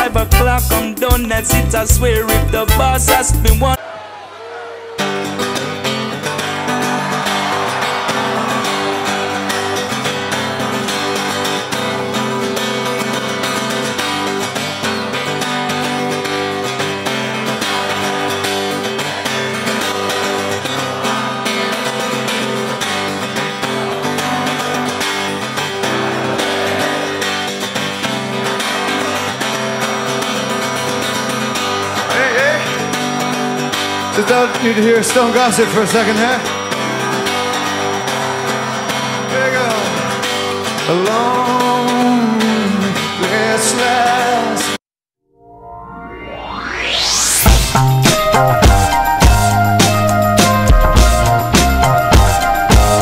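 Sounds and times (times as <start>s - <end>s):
strummed acoustic guitar music: 0.0s - 3.8s, 5.0s - 44.8s, 47.7s - 53.0s.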